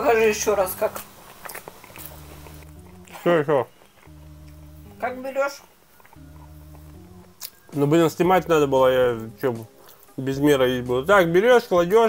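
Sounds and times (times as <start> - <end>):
person chewing food: 0.9 - 5.0, 5.6 - 7.7, 9.7 - 10.2
steady low hum: 1.9 - 3.3, 4.0 - 5.2, 6.0 - 7.4.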